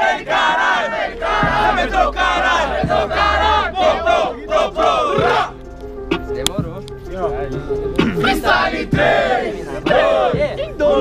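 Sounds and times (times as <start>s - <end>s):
crowd chanting: 0.0s - 5.6s, 8.0s - 11.0s.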